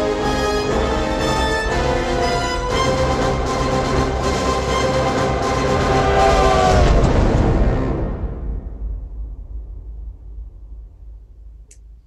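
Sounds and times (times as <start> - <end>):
steam locomotive whistle: 0.0 - 7.1
dramatic trailer music: 0.0 - 10.9
heavy low rumble: 0.0 - 12.0.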